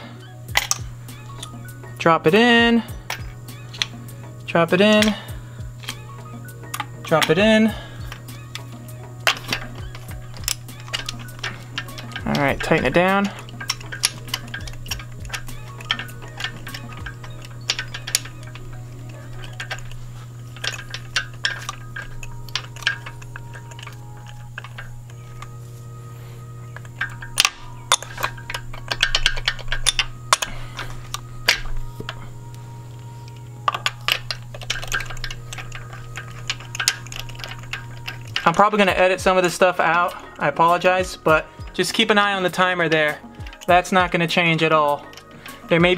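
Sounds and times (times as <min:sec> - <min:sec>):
low hum: 0:00.0 - 0:44.2
background music: 0:00.0 - 0:45.9
ratchet clicking: 0:00.0 - 0:45.9.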